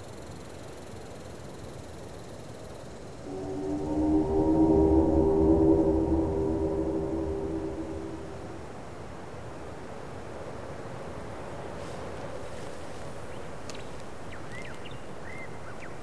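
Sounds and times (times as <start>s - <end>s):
steady outdoor hiss: 0.0s - 16.0s
low horn-like chord: 3.2s - 8.8s
low rumble: 3.2s - 8.8s.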